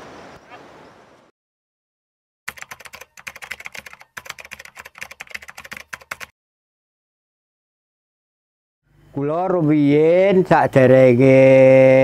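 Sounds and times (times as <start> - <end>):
keyboard typing clicks: 2.5 - 6.3.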